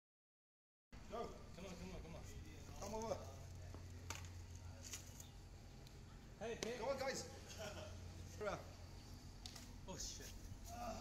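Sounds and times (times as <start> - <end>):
low steady hum: 1.0 - 11.0.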